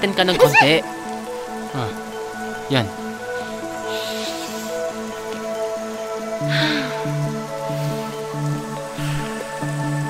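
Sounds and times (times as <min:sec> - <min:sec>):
soft film music: 0:00.0 - 0:10.0
steady rain: 0:00.0 - 0:10.0.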